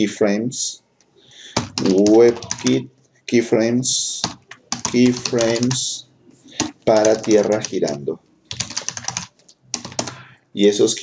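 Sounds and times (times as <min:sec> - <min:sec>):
computer keyboard typing: 0:01.5 - 0:02.8, 0:04.2 - 0:05.9, 0:06.5 - 0:10.3.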